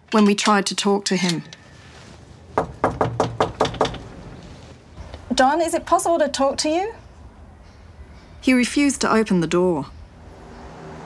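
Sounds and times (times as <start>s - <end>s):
knocking on screen door: 2.6s - 4.1s.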